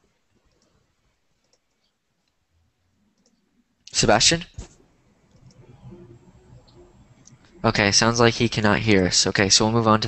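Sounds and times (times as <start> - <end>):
faint clicks: 0.4 - 0.8, 1.4 - 2.4, 3.1 - 4.0, 5.3 - 5.7
person speaking: 7.0 - 10.0.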